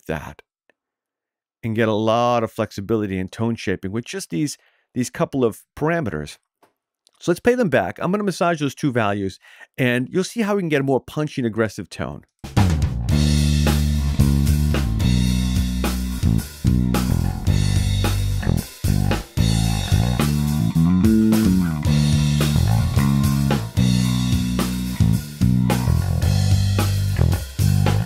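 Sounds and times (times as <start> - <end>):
drums playing: 12.4 - 28.0
electric bass guitar: 12.6 - 28.0.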